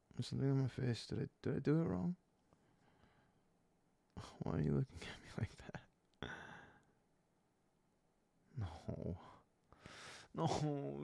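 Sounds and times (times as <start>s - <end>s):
man breathing in: 2.6s - 3.4s, 6.2s - 7.0s, 9.7s - 10.3s
man speaking: 4.2s - 6.0s, 8.6s - 9.4s, 10.3s - 11.0s
man sighing: 6.2s - 6.9s, 8.5s - 10.5s.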